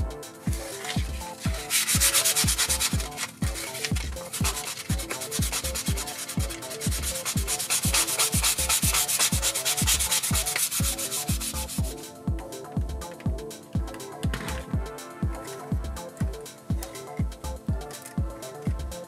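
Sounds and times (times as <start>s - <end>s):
kick drum beating: 0.0s - 18.9s
electronic background music: 0.0s - 19.0s
wood being hand-sanded: 0.5s - 11.8s.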